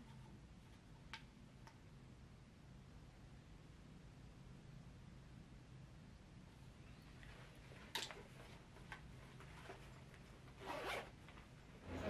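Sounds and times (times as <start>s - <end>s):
bag zipper zipping: 10.6s - 11.1s.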